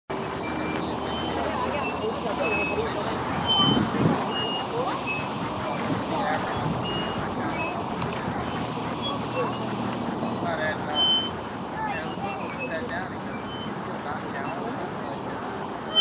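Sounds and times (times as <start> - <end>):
scattered voices: 0.1 - 16.0
traffic hum: 0.1 - 16.0.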